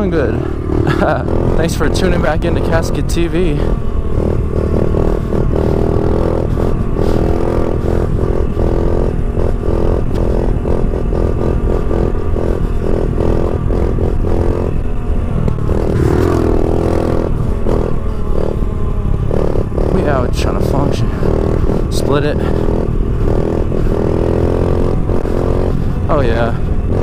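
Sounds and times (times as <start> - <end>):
small motorbike engine revving high: 0.0 - 27.0.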